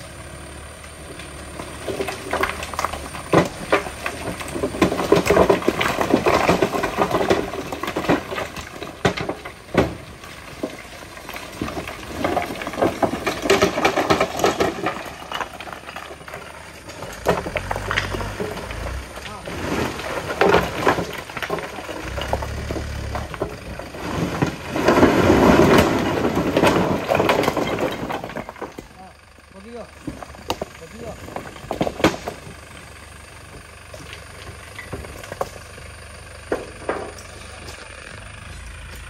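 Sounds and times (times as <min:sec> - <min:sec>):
rock clattering onto rock pile: 0:01.9 - 0:29.0
truck engine revving: 0:11.0 - 0:28.8.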